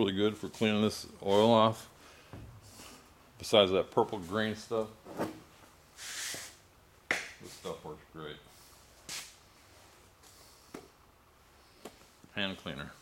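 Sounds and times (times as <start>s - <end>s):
short hiss: 6.0s - 6.6s.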